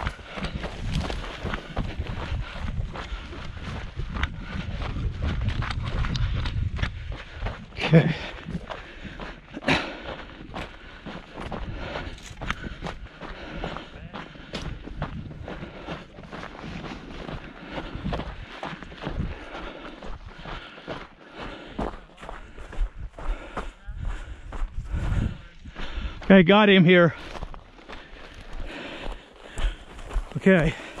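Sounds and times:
footsteps crunching on gravelly dirt: 0.0 - 31.0.

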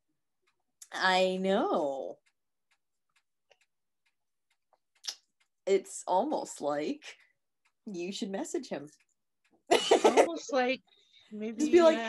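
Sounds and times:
faint clicks: 0.4 - 9.7.

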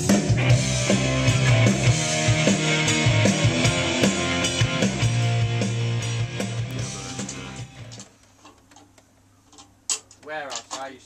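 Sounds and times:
music playback: 0.0 - 8.2.

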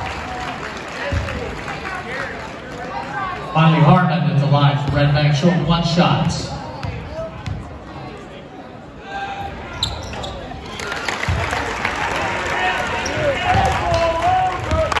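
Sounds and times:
crowd cheering and shouting: 10.6 - 15.0.

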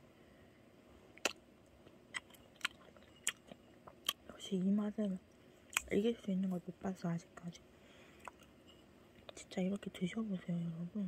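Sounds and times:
mouth clicks while chewing: 1.2 - 4.2.

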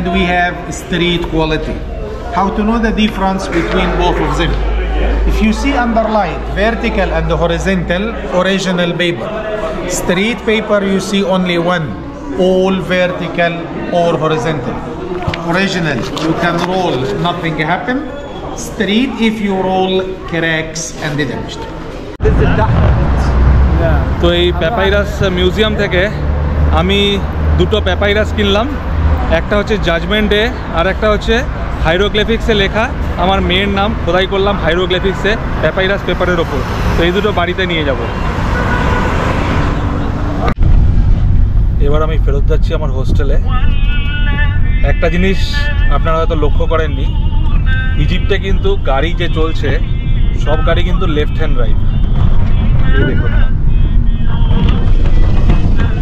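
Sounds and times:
man speaking: 0.0 - 21.6, 22.2 - 38.2, 41.8 - 51.9
steady low rumble: 22.2 - 27.8, 40.2 - 56.0
wind noise on microphone: 40.4 - 56.0.

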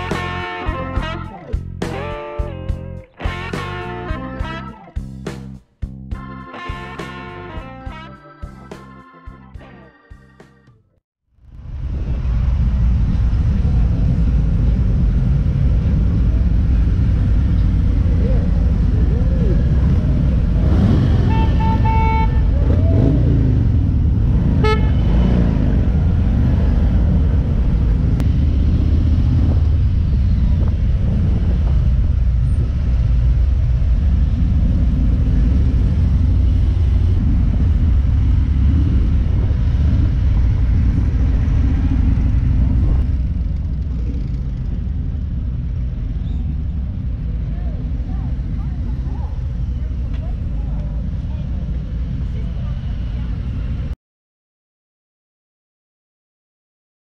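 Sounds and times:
motorcycle engines rumbling: 0.0 - 5.3, 11.5 - 54.0
horn beeping: 20.8 - 23.1, 24.6 - 25.4.

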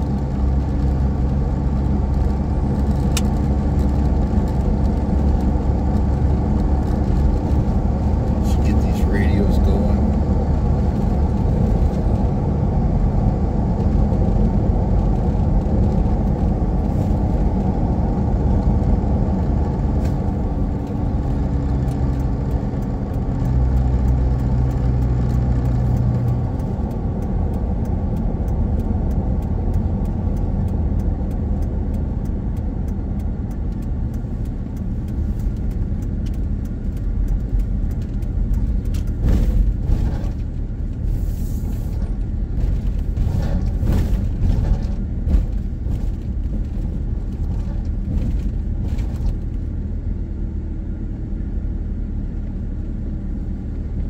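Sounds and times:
car tyre and engine rumble: 0.0 - 54.0.

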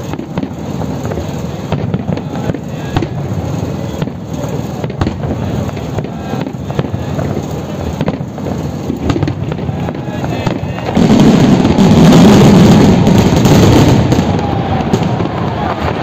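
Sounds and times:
fireworks exploding: 0.0 - 16.0.

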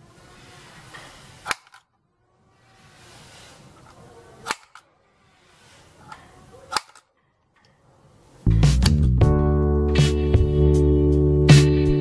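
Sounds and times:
hands rubbing on wood: 2.6 - 4.1.

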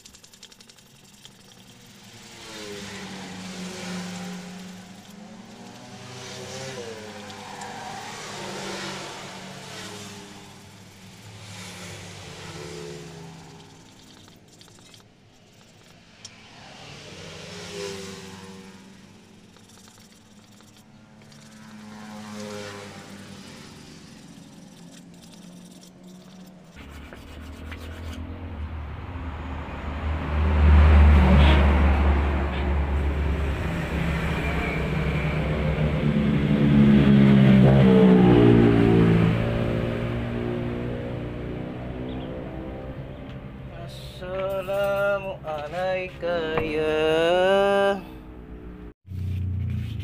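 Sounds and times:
vehicles passing by: 0.0 - 50.0
low engine rumble: 18.5 - 50.0.

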